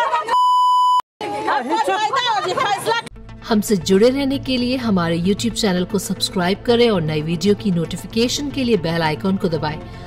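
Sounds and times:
high-pitched censor bleep: 0.4 - 1.0
agitated voices arguing: 1.2 - 3.1.

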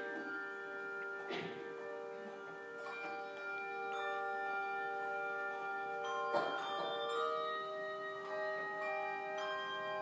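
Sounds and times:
handbell choir playing: 0.0 - 10.0.

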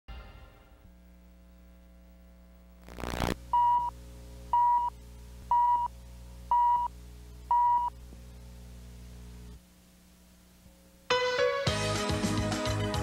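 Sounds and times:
steady low hum: 0.3 - 11.1
short burst of noise: 2.8 - 3.4.

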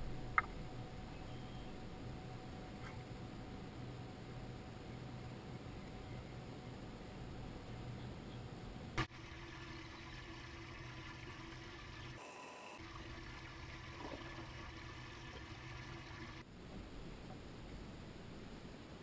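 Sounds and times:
open water hiss and hum: 0.0 - 19.0.

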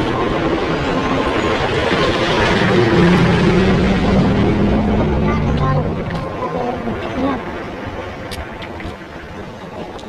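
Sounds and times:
loud steady background noise: 0.0 - 10.0
low hum: 0.0 - 10.0
indistinct voices: 2.4 - 7.7.

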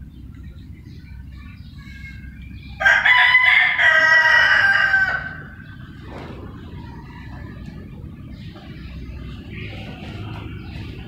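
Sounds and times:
chickens clucking and chirping: 0.0 - 11.0
rooster crowing: 2.8 - 5.6
low rumble: 5.3 - 11.0.

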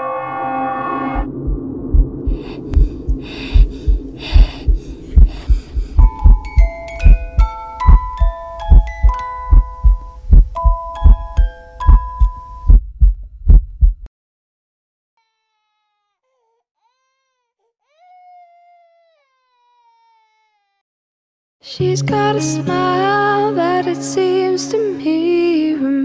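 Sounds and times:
slow heartbeat thumps: 1.2 - 14.1
music-box melody: 6.0 - 12.6.

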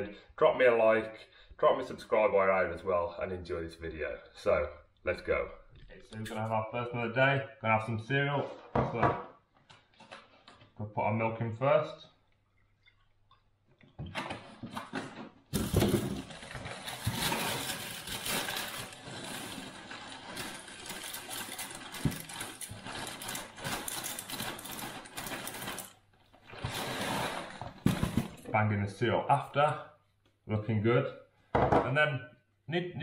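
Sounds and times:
cereal pouring from plastic bag: 15.6 - 25.9.

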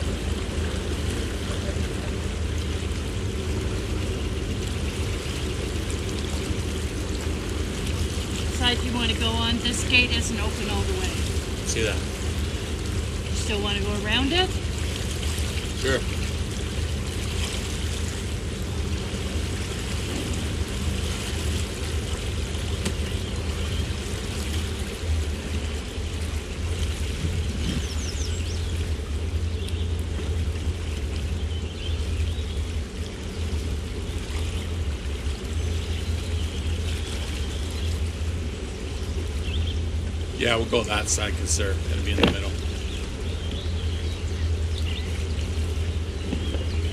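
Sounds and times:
boat engine low rumble: 0.0 - 46.9
water washing along hull: 0.0 - 46.9.

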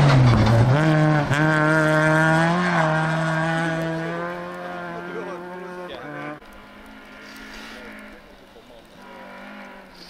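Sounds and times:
distant engine revving: 0.0 - 10.0
loud rally car engine: 0.0 - 10.0.

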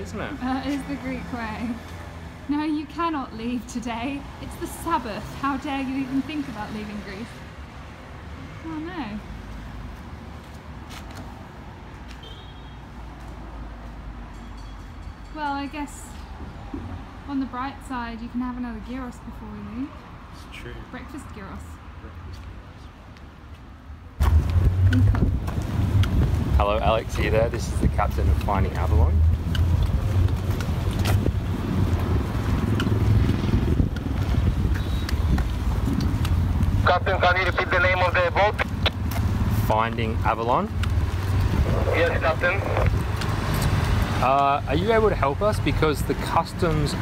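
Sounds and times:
road traffic rumble: 0.0 - 47.0
wind buffeting microphone: 24.2 - 28.3, 29.2 - 37.2, 40.8 - 43.5.

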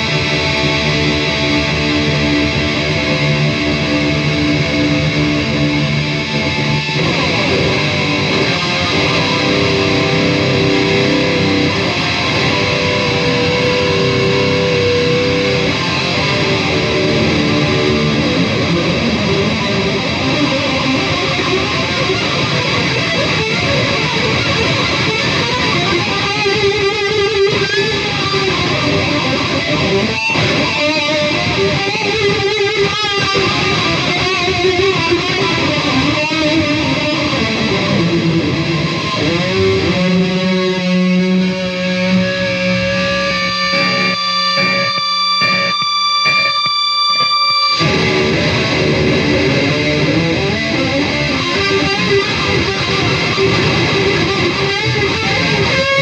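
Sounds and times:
shred electric guitar lead: 0.0 - 56.0.

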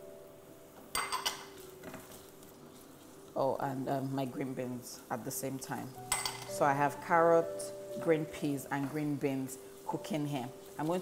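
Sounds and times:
kitchenware clinking against pot: 0.9 - 2.2, 6.1 - 6.6.

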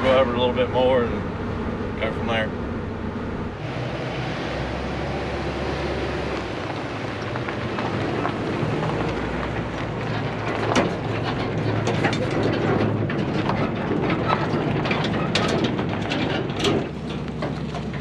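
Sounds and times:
truck engine idling: 0.0 - 18.0
footsteps on gravel: 6.1 - 12.4.

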